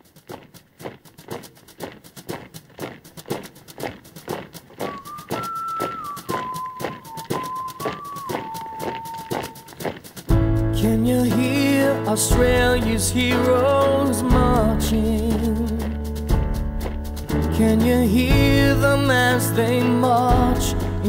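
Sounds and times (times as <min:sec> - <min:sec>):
marching feet in step: 0:00.0 - 0:11.6, 0:14.3 - 0:17.6.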